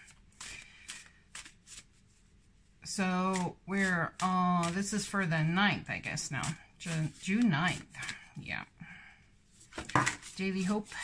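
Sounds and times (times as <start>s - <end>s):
cards being shuffled: 0.0s - 2.2s, 9.6s - 11.0s.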